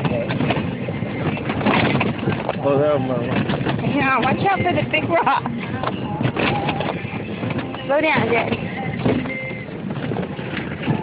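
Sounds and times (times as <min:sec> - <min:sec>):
faint voices: 0:00.0 - 0:09.7
golf cart running: 0:00.0 - 0:11.0
knocks and rattles: 0:00.0 - 0:11.0.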